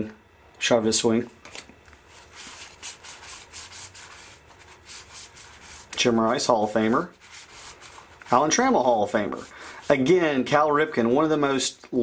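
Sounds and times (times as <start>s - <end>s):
cardboard cards sliding together: 2.1s - 5.9s.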